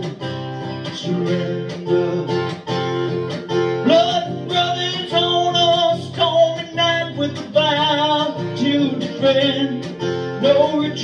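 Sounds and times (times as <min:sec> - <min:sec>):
man singing: 0:00.0 - 0:02.8, 0:03.8 - 0:11.0
acoustic guitar strumming: 0:00.0 - 0:11.0.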